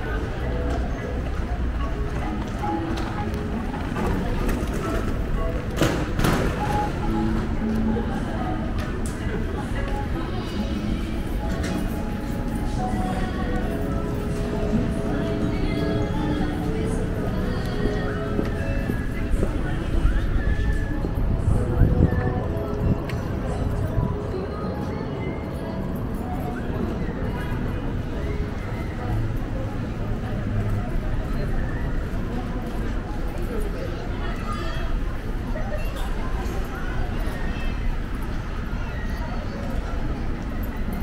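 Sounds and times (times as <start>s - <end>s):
music playing: 0.0s - 31.3s
low city rumble: 0.0s - 41.0s
passers-by talking: 0.0s - 41.0s
people's voices: 0.0s - 41.0s.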